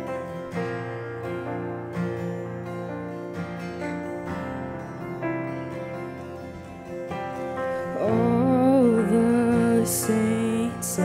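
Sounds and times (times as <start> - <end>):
acoustic guitar and bass chords: 0.0 - 11.0
woman singing slow melody: 7.8 - 11.0.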